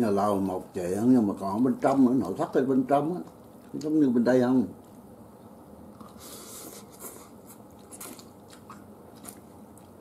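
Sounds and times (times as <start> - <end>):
person chewing crunchy food: 5.9 - 10.0.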